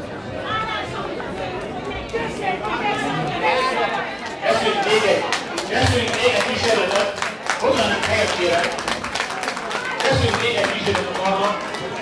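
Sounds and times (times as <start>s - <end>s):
overlapping indistinct voices: 0.2s - 12.0s.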